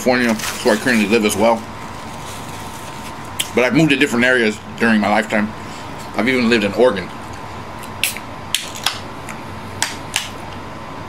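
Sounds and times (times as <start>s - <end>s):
can opening crack: 7.8s - 9.0s.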